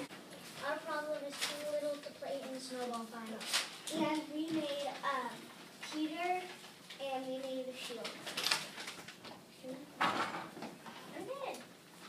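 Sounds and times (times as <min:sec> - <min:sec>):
children's voices: 0:00.0 - 0:08.4.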